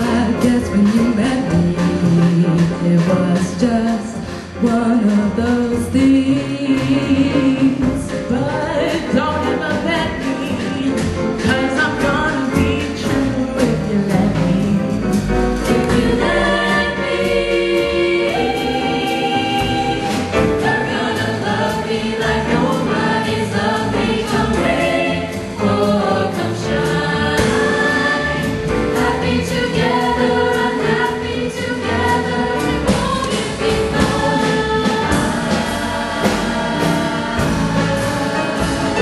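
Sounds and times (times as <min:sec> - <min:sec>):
women's vocal ensemble singing jazz: 0:00.0 - 0:39.0.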